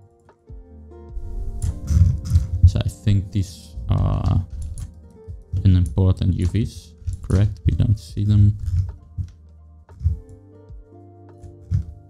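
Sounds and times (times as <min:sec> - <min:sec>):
man talking: 0:02.6 - 0:04.6, 0:05.6 - 0:08.8.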